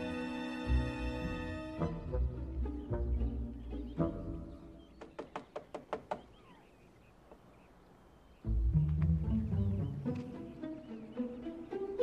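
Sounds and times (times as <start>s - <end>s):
knocking on a door: 5.0s - 6.3s.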